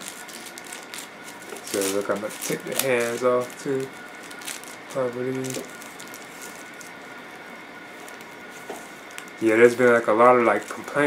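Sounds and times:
faint high-pitched hum: 0.0 - 11.0
steady hiss: 0.0 - 11.0.

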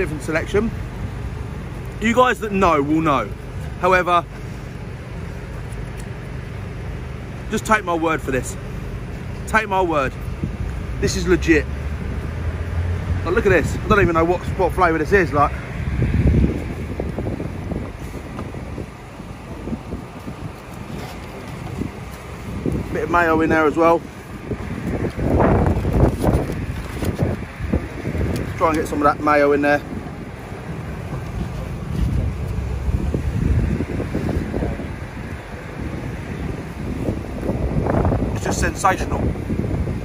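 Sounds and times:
wind buffeting microphone: 9.2 - 11.3, 12.0 - 40.0.

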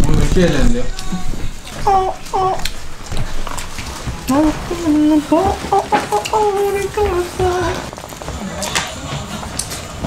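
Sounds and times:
plastic food packaging crinkling: 0.1 - 10.0
man making squeaky vocal noises: 0.9 - 2.8, 4.3 - 7.9.

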